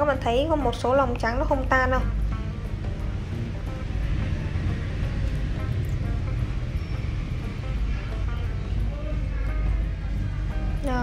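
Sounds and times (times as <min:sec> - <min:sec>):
faint background music: 0:00.0 - 0:11.0
low rumble: 0:00.0 - 0:11.0.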